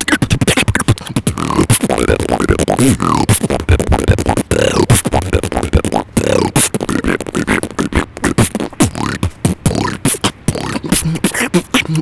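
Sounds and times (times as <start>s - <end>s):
person beatboxing: 0.0s - 12.0s
sliding vocal tones: 0.0s - 12.0s.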